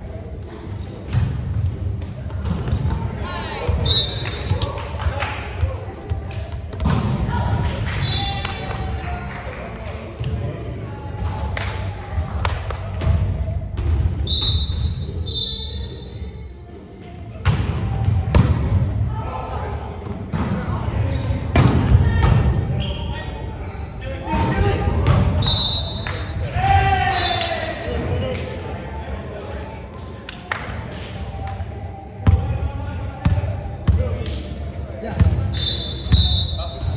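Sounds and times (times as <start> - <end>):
volleyball hits in a gym: 0.0 - 36.9.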